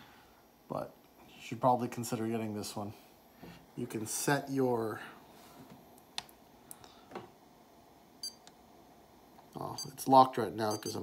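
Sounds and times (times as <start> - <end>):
high-pitched key beep: 10.7 - 11.0.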